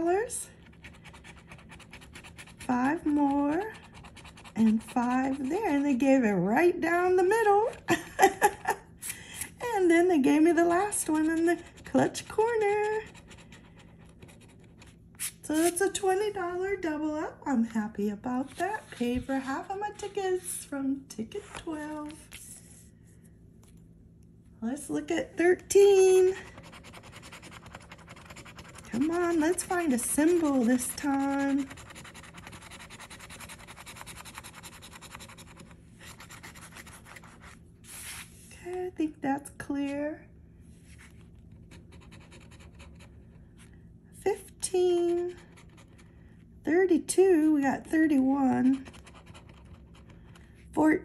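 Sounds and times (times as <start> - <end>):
scratch card being scraped: 0.6 - 5.8, 10.8 - 15.8, 26.4 - 38.3.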